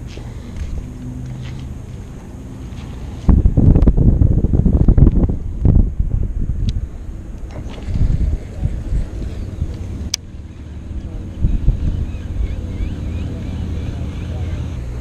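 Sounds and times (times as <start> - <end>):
wind buffeting microphone: 0.0 - 15.0.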